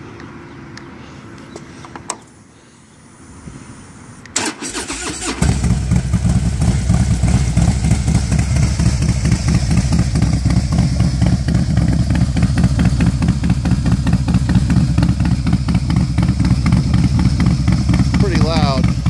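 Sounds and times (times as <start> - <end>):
motorcycle starter cranking: 4.4 - 5.8
motorcycle engine idling loudly: 5.4 - 19.0.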